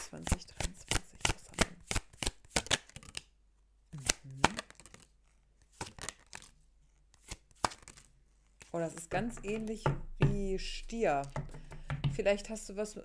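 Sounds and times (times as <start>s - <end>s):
cards shuffled by hand: 0.0s - 3.3s, 4.0s - 9.7s.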